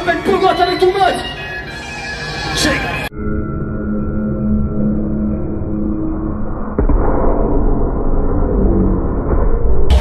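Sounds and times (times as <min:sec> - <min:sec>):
deep bass: 0:04.7 - 0:10.0.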